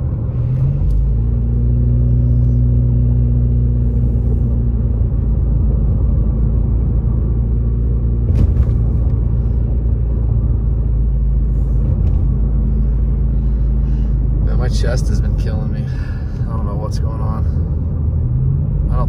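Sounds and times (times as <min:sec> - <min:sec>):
engine and tyre rumble: 0:00.0 - 0:19.0.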